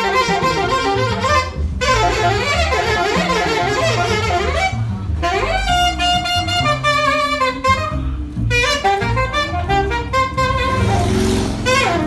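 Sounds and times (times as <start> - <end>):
double bass tones: 0.0 - 12.0
saxophone: 0.0 - 12.0.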